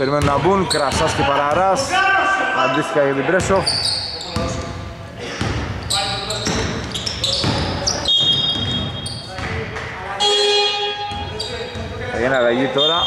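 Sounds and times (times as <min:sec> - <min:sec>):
players' voices: 0:00.0 - 0:13.0
short high squeaks: 0:05.8 - 0:09.3
basketball bouncing on hardwood: 0:07.4 - 0:09.6.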